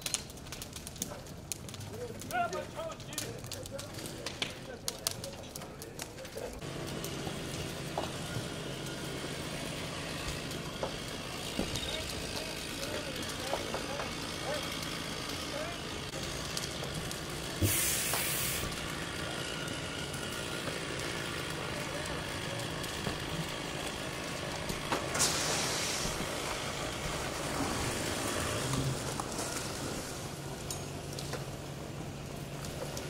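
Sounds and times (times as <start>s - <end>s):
fire burning: 0.0s - 33.0s
fire engine running: 0.0s - 33.0s
faint voices: 10.5s - 16.1s, 21.4s - 23.9s
sharp hissing bursts: 17.6s - 18.7s, 25.1s - 26.2s.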